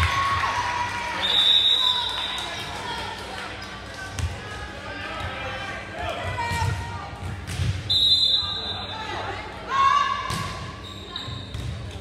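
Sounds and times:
crowd and player voices: 0.0 - 12.0
referee's whistle: 1.2 - 2.5, 7.9 - 9.0, 10.8 - 11.6.

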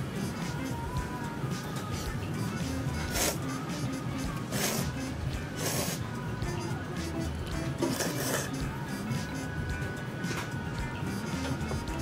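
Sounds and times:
background music: 0.0 - 12.0
slurping noodles: 3.0 - 3.5, 4.4 - 6.1, 7.8 - 9.1.

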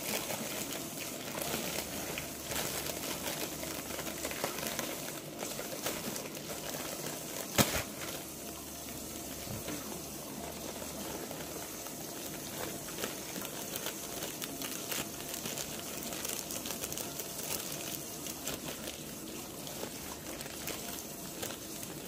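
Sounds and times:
plastic pouch crinkling: 0.0 - 22.0.

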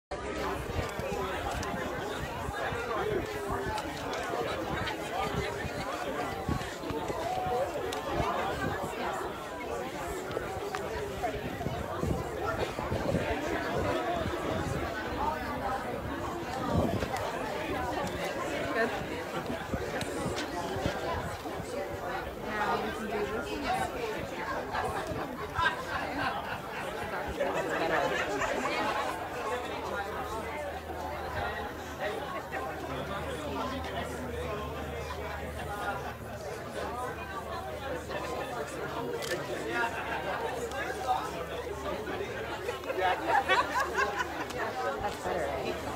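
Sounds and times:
people chatting: 0.1 - 45.9.

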